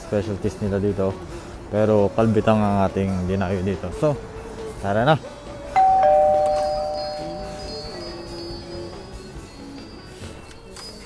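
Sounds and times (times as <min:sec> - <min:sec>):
door entry chime: 0:05.8 - 0:08.9.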